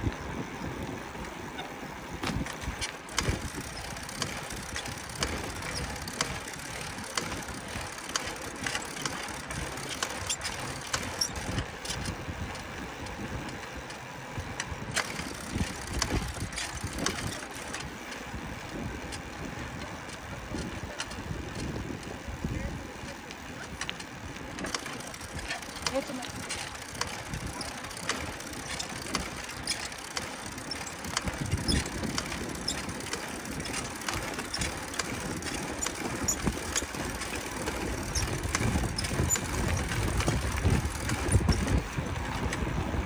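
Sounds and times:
wind rumble on microphone: 0.0 - 7.9, 11.1 - 29.8, 30.5 - 43.0
bike clicks and knocks: 2.1 - 22.2, 23.2 - 42.8.

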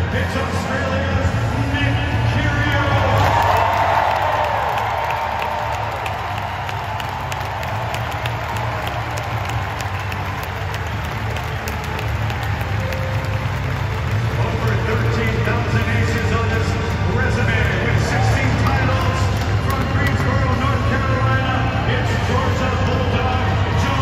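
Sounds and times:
bass line over loudspeakers: 0.0 - 4.0, 4.8 - 24.0
crowd cheering and clapping: 0.0 - 24.0
close hand claps: 3.1 - 16.3.

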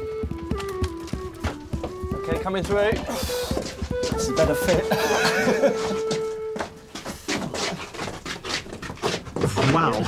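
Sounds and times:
background music note: 0.0 - 7.2.

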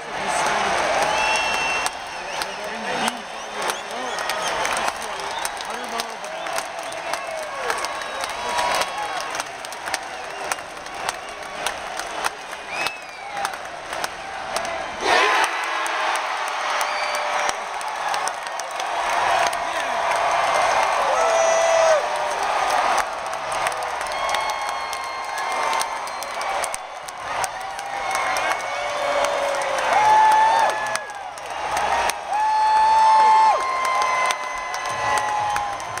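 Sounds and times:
crowd cheering and shouting: 0.0 - 36.0
whoops: 19.7 - 23.1, 23.7 - 36.0.

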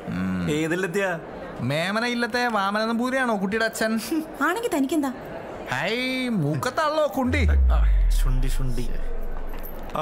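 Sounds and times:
deep bass boom: 7.3 - 10.0.

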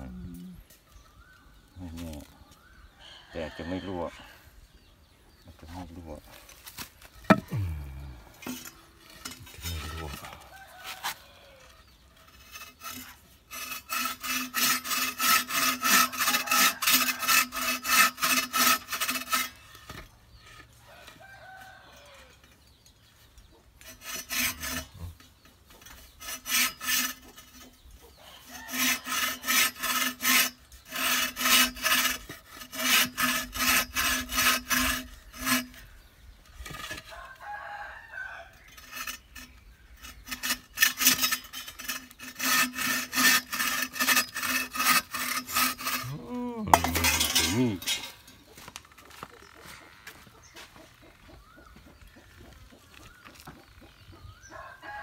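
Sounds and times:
bow saw cutting bamboo: 5.5 - 21.7, 23.8 - 48.8.

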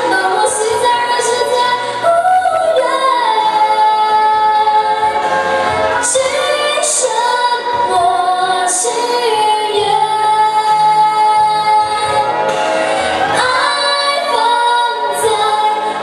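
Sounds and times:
girl singing into microphone: 0.0 - 5.3, 5.9 - 16.0
karaoke backing track: 0.0 - 16.0.

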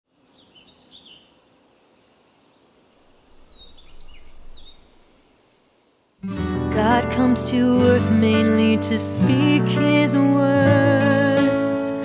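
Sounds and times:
birds chirping: 0.1 - 5.3.

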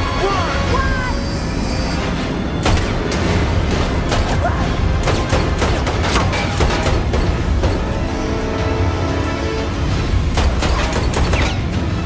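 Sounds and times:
action film music: 0.0 - 12.0.

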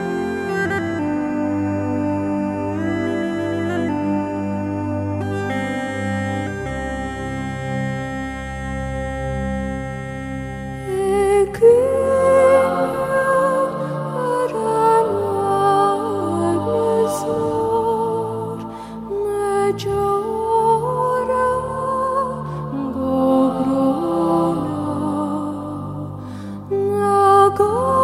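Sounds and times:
slow sliding melody: 0.0 - 28.0
slow soft new-age music: 0.0 - 28.0.

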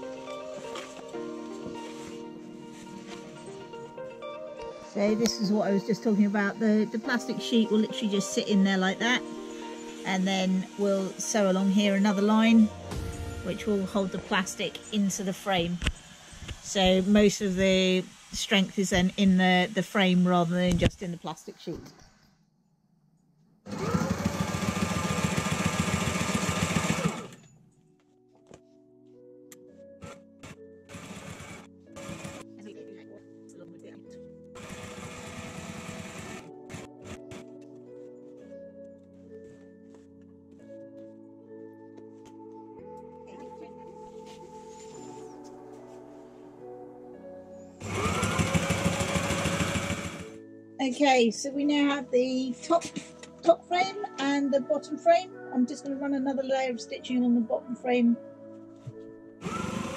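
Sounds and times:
sewing machine stitching: 23.7 - 27.4, 30.0 - 32.4, 34.6 - 37.4, 47.8 - 50.4, 59.4 - 59.9.

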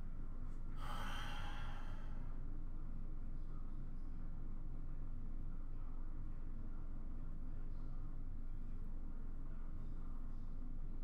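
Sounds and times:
low room hum: 0.0 - 11.0
person sighing: 0.8 - 2.0.

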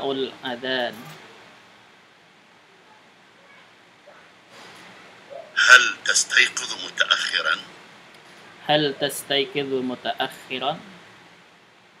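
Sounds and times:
faint room tone hiss: 0.0 - 12.0
person speaking: 5.6 - 7.7.

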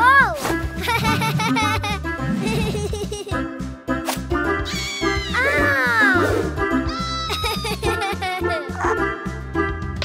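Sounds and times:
upbeat children's music: 0.0 - 10.0
cartoon creature meow-like call: 4.7 - 6.2, 6.9 - 7.3.

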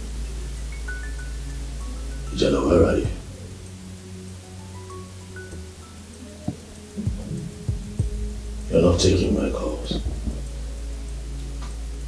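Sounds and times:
steady hum: 0.0 - 12.0
sustained low film score: 0.0 - 12.0
faint ticks: 4.5 - 12.0.

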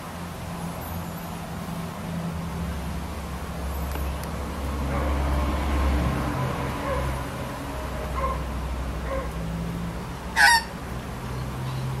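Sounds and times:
magpie call: 10.4 - 10.7.

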